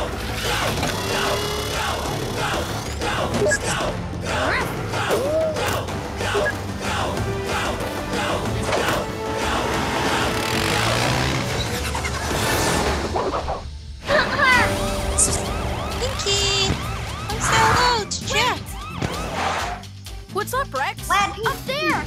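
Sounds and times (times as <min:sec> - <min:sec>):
upbeat action music: 0:00.0 - 0:22.0
vehicle engine effects: 0:08.8 - 0:13.9
siren sound effects: 0:14.6 - 0:19.8.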